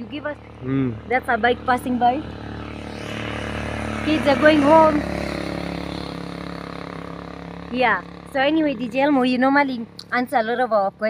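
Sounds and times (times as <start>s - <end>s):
motorcycle engine passing: 0.0s - 11.0s.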